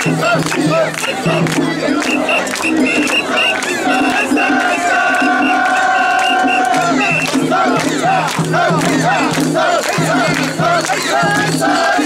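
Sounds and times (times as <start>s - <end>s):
crowd shouting calls: 0.0s - 12.0s.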